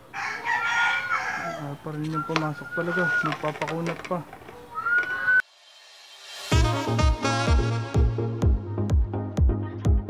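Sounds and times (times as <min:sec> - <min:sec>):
rooster crowing: 0:00.0 - 0:01.9.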